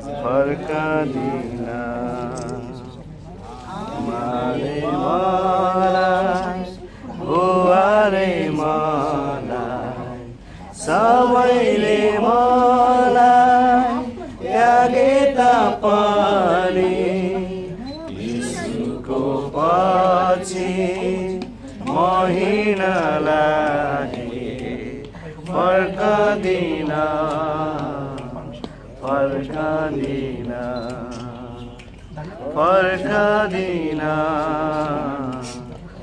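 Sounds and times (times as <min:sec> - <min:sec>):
voices singing a slow hymn: 0:00.0 - 0:36.0.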